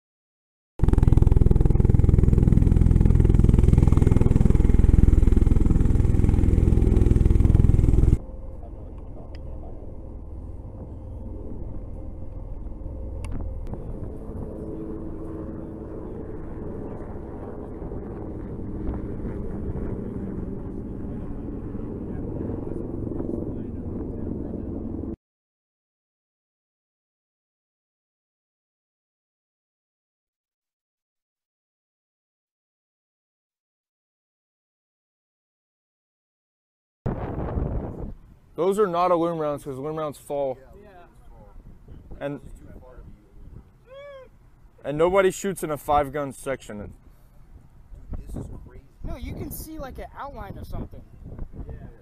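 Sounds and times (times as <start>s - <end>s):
loud low rumble: 0.8s - 25.2s
low hum with faint tone: 4.4s - 25.1s.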